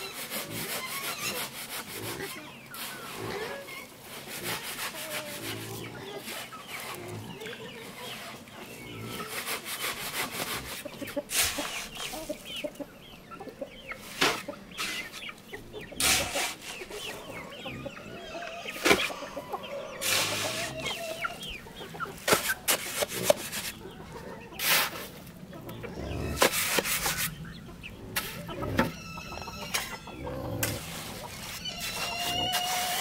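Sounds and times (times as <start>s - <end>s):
chickens clucking: 0.0s - 33.0s
shovel scraping wet mortar: 9.1s - 12.4s, 14.0s - 15.2s, 16.0s - 17.2s, 20.0s - 21.4s, 22.2s - 23.8s, 24.6s - 25.2s, 26.3s - 27.4s, 28.1s - 28.9s, 30.6s - 33.0s.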